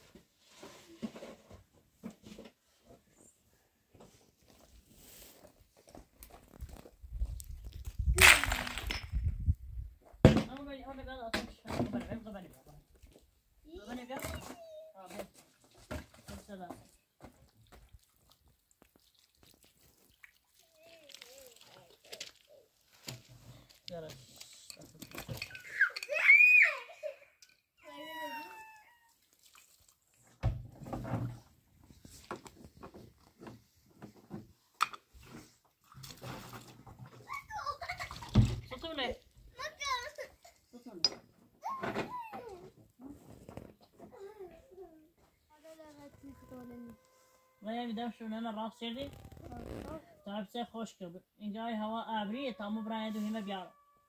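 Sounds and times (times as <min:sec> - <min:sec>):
stones thudding and scraping: 0:07.6 - 0:09.3
women and children talking and calling: 0:13.6 - 0:15.4, 0:37.2 - 0:50.6.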